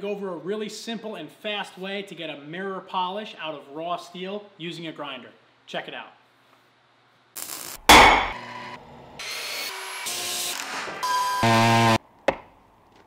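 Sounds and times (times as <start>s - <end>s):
loud buzz: 7.8s - 8.7s, 11.4s - 12.0s
metallic hit: 7.9s - 8.4s.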